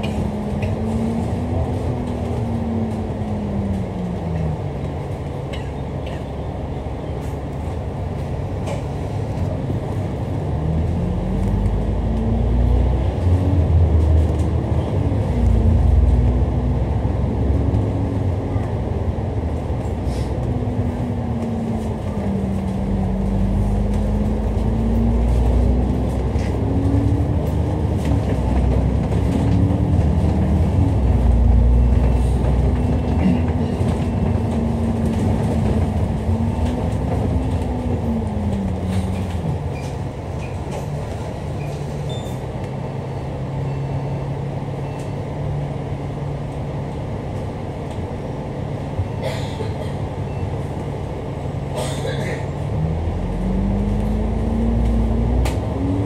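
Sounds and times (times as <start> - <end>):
bus engine rumble: 0.0 - 56.0.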